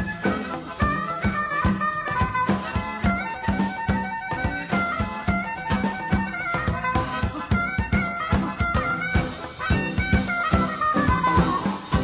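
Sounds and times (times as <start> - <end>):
drum kit: 0.0 - 12.0
electric bass: 0.0 - 12.0
guitar: 0.0 - 12.0.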